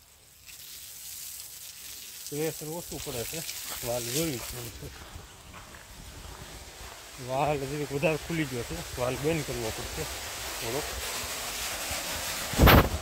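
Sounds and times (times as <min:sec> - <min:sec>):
man talking: 0:02.3 - 0:05.1, 0:07.2 - 0:10.9.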